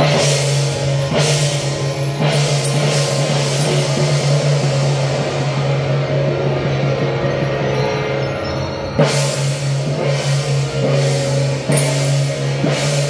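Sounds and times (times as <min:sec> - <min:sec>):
hand gong crashing: 0:00.0 - 0:13.0
procession percussion: 0:00.0 - 0:13.0.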